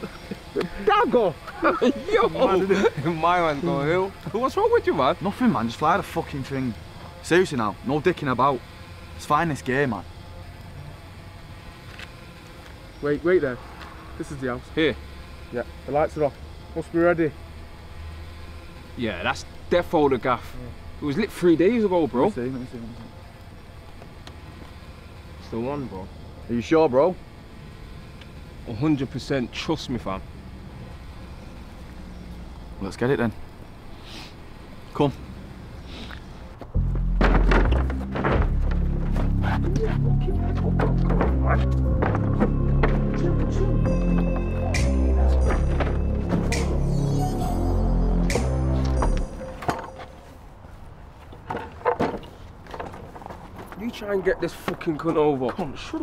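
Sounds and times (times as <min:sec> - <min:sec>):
sharp knocks and thuds: 0:36.8 - 0:39.4, 0:40.8 - 0:43.1
background music: 0:36.8 - 0:50.4.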